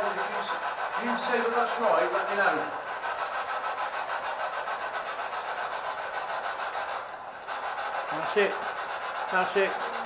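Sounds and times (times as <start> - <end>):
pulsing static hiss: 0.0 - 10.0.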